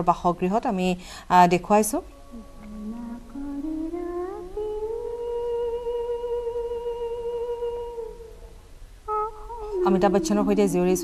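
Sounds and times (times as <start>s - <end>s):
woman singing wordlessly: 1.5s - 8.4s, 9.1s - 11.0s.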